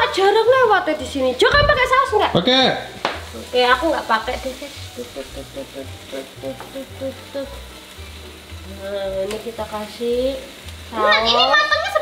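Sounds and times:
light background music: 0.0s - 12.0s
meat sizzling in a pan: 0.0s - 12.0s.

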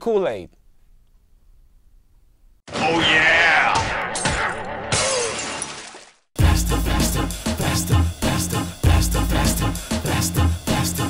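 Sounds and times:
glass crash: 2.7s - 6.2s
upbeat music: 6.4s - 11.0s.

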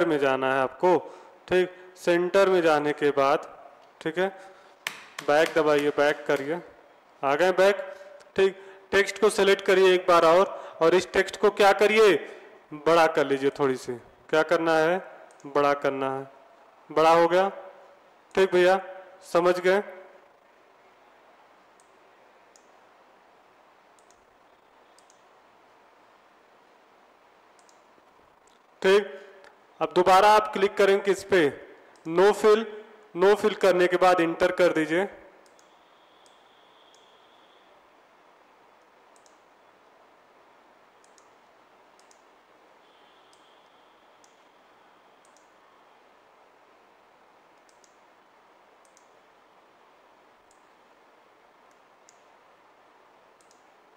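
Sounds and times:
faint steady hiss: 0.0s - 53.9s
computer mouse clicks: 21.7s - 22.8s, 23.9s - 24.3s, 24.9s - 25.3s, 27.5s - 28.7s, 35.4s - 37.2s, 38.8s - 39.5s, 41.0s - 42.3s, 43.3s - 43.6s, 44.2s - 44.5s, 45.2s - 45.6s, 47.5s - 48.1s, 48.8s - 49.2s, 50.4s - 50.8s, 51.6s - 52.3s, 53.3s - 53.8s
faint steady high tone: 35.4s - 38.0s, 42.8s - 46.1s.

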